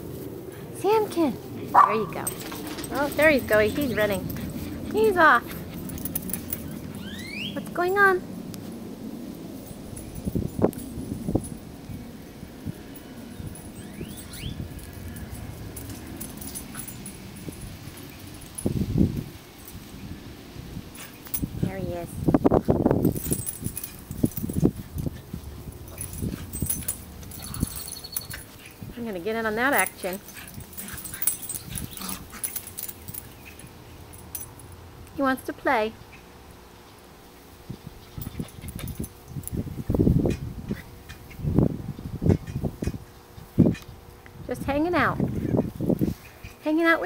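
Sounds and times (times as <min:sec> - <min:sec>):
dog moving about: 0:01.5 - 0:07.1, 0:22.6 - 0:34.7.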